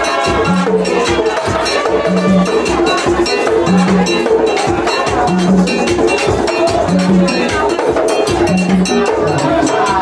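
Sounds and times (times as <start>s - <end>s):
fast drum strokes: 0.0s - 10.0s.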